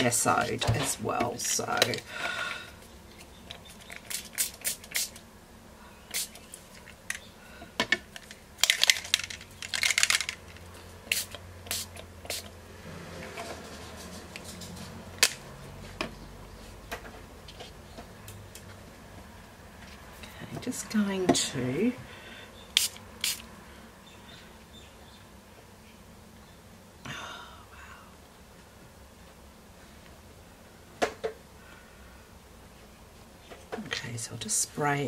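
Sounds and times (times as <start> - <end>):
spray bottle hissing spritzes: 4.0 - 5.2, 6.1 - 6.4, 11.1 - 12.5, 22.8 - 23.5.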